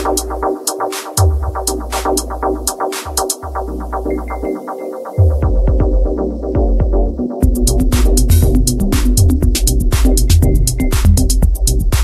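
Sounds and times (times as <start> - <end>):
heavy bass: 0.0 - 0.6, 1.2 - 4.5, 5.3 - 12.0
hi-hats: 0.0 - 4.1, 7.4 - 12.0
repeating synth notes: 0.0 - 11.4
electronic dance music: 0.0 - 12.0.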